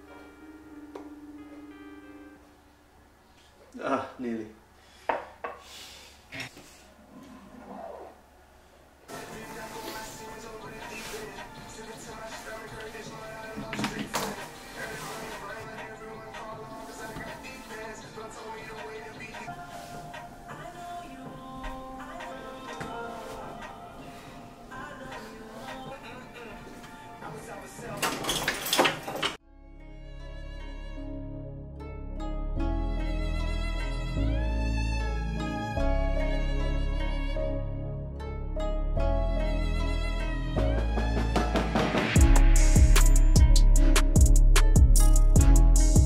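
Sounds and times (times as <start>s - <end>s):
bag rustling: 9.1s - 28.0s
crockery handling sounds: 27.8s - 29.4s.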